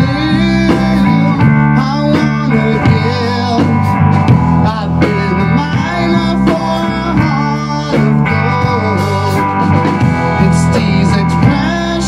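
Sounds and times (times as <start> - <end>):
drum kit: 0.0 - 12.0
electric bass guitar: 0.0 - 12.0
electric guitar: 0.0 - 12.0.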